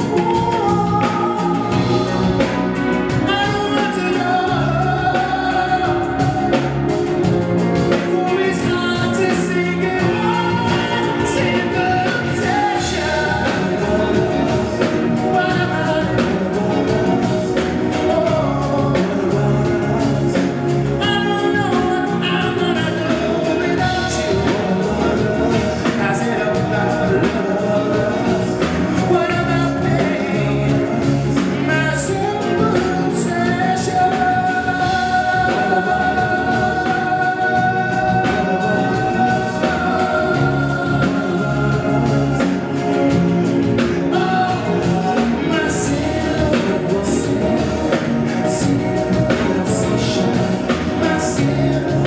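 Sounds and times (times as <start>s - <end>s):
band playing drums and instruments: 0.0s - 52.0s
man singing live: 0.0s - 52.0s.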